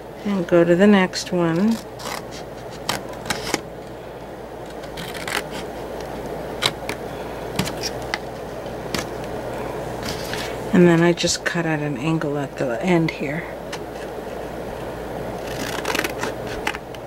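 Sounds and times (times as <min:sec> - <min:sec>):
steady background hum: 0:00.0 - 0:17.0
scissors snipping paper: 0:04.7 - 0:07.0, 0:15.4 - 0:17.0.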